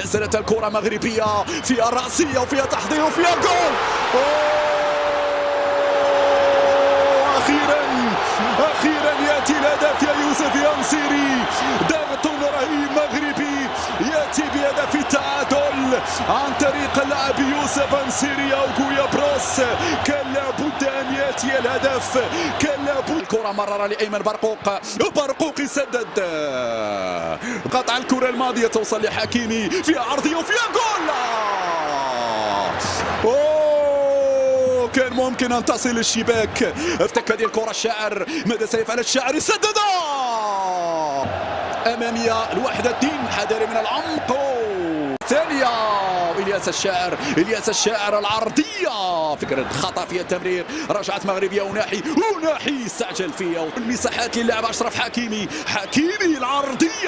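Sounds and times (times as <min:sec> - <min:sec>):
stadium crowd cheering: 0:00.0 - 0:57.0
commentator shouting goal: 0:00.1 - 0:37.9.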